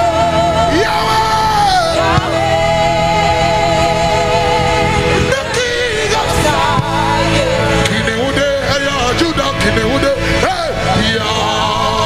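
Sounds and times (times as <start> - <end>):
band playing worship music: 0.0 - 12.0
man singing: 0.0 - 12.0.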